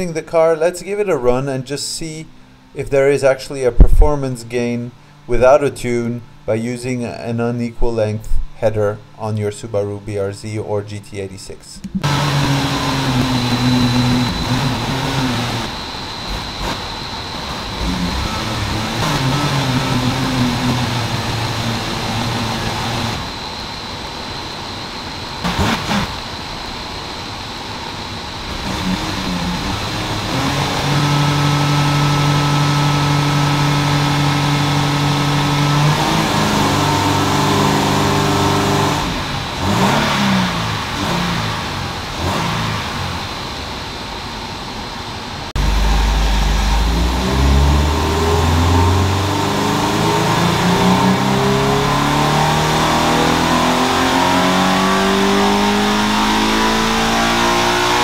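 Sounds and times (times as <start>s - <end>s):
boxer engine revving under load: 12.0s - 16.8s, 17.4s - 23.4s, 28.5s - 43.4s, 45.6s - 58.0s.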